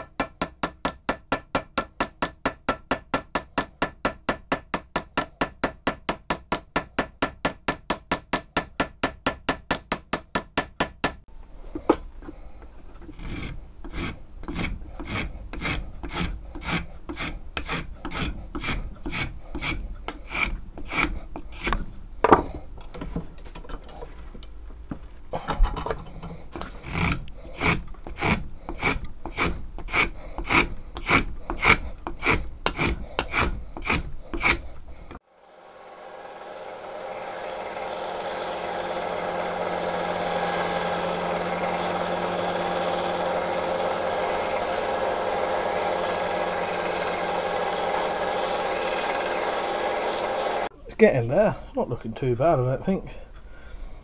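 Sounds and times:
hand file scraping wood: 0:11.7 - 0:23.2, 0:26.0 - 0:50.7
electric belt sander running: 0:35.2 - 0:50.7.

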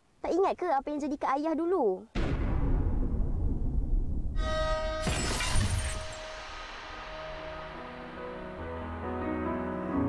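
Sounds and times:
car crash with glass shattering: 0:04.4 - 0:08.2.

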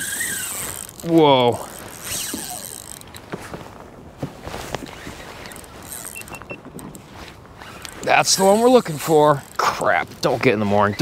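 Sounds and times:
fishing reel drag buzzing: 0:00.0 - 0:03.3, 0:04.8 - 0:11.0
reel and rod clicks and knocks: 0:00.0 - 0:03.6, 0:04.6 - 0:11.0.

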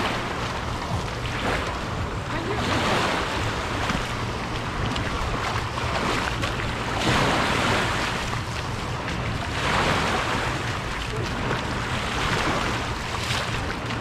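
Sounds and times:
low steady rumble: 0:00.0 - 0:14.0
waves lapping on shoreline: 0:00.0 - 0:14.0.

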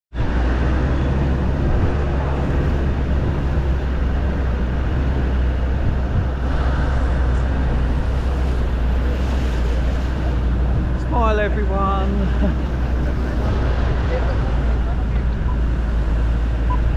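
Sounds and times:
road rumble: 0:00.1 - 0:16.9
vehicle engine running: 0:00.1 - 0:16.9
wind noise: 0:00.1 - 0:16.9.

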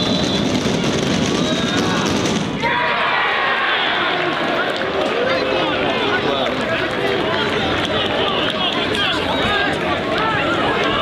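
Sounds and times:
referee's whistle: 0:00.0 - 0:00.6
football crowd shouting: 0:00.0 - 0:11.0.

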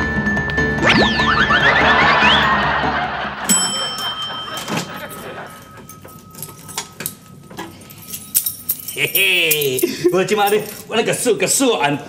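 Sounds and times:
keys and lock clinking: 0:03.5 - 0:11.0.

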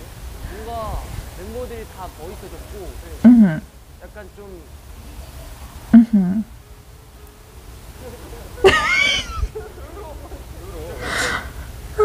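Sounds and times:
faint speech: 0:00.4 - 0:12.0
woman's stifled laugh: 0:03.2 - 0:03.6, 0:06.0 - 0:06.5, 0:08.5 - 0:10.2.

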